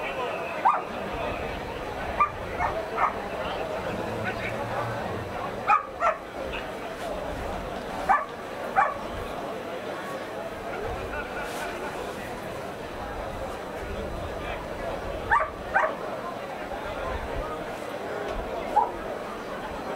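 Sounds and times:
murmur of voices: 0:00.0 - 0:19.9
dog yelping and barking: 0:02.2 - 0:03.2, 0:05.7 - 0:06.2, 0:08.1 - 0:09.0, 0:15.3 - 0:16.0.

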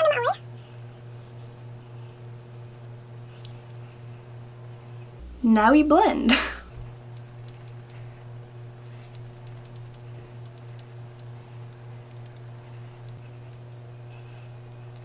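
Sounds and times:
steady low hum: 0:00.0 - 0:15.0
makeup sponge patting face: 0:08.9 - 0:15.0.

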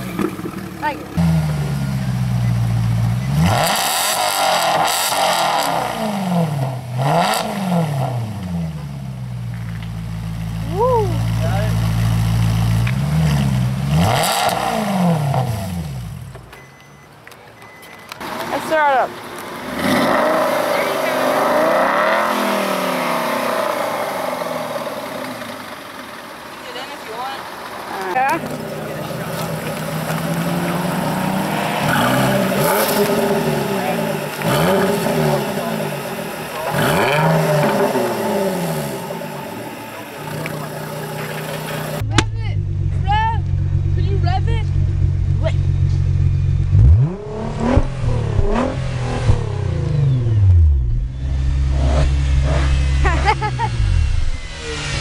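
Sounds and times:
car engine idling: 0:00.0 - 0:03.5, 0:05.8 - 0:13.9, 0:20.4 - 0:55.0
sports car engine revving: 0:00.0 - 0:16.3, 0:18.4 - 0:26.5, 0:27.4 - 0:55.0.

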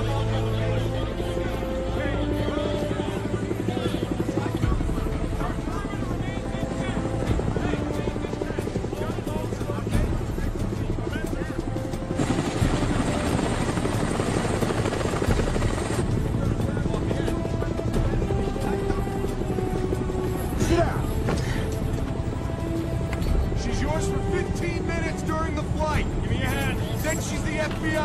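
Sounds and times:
film score music: 0:00.0 - 0:28.0
helicopter rotors chopping: 0:00.0 - 0:28.0.

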